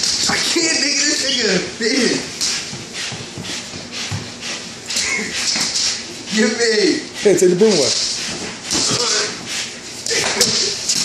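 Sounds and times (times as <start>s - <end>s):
broom bristles scraping wooden floor: 1.9s - 9.8s.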